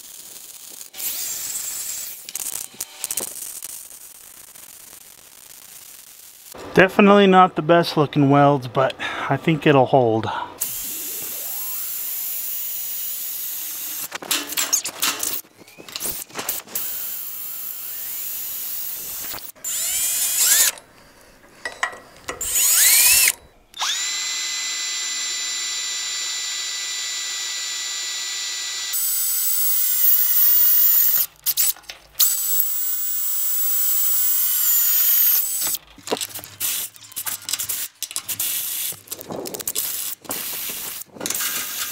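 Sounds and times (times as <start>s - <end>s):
cordless drill whining: 0.8s - 3.4s, 10.6s - 35.8s.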